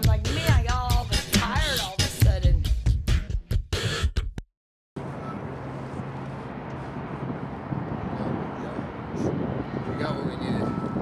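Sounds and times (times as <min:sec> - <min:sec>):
traffic rumble: 0:05.0 - 0:11.0
wind on microphone: 0:06.3 - 0:11.0.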